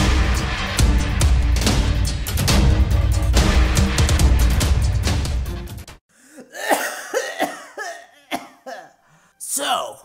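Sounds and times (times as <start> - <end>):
dramatic title music: 0.0 - 6.0
cartoon voice coughing: 6.4 - 9.0.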